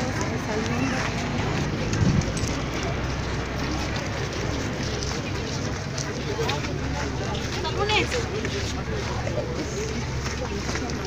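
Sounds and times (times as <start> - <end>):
people talking outdoors: 0.0 - 11.0.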